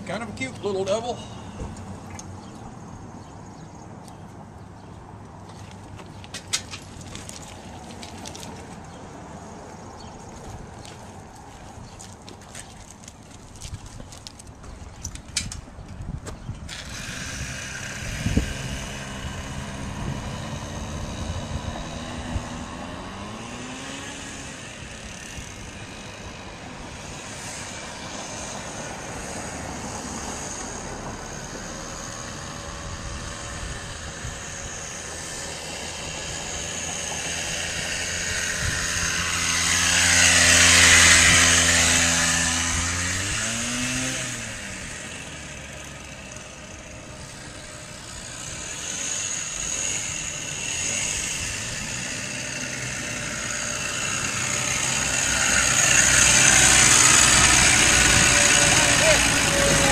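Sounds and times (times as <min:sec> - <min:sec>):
two-stroke bicycle motor passing: 0:16.4 - 0:59.9.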